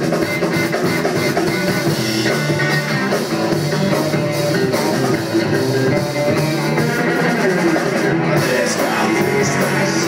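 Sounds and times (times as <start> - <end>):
drum kit: 0.0 - 10.0
electric guitars: 0.0 - 10.0.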